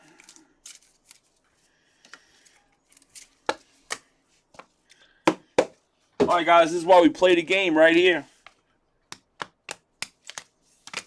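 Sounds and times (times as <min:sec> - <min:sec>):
plastic card holders rustling: 0:08.3 - 0:11.0.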